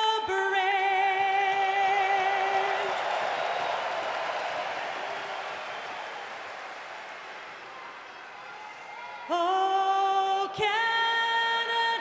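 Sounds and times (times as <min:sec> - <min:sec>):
arena crowd applauding and cheering: 0:00.7 - 0:10.8.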